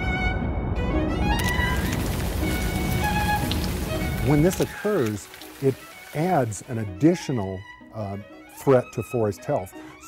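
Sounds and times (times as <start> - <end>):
slow string music: 0.0 - 10.0
rain-like hiss: 1.2 - 6.9.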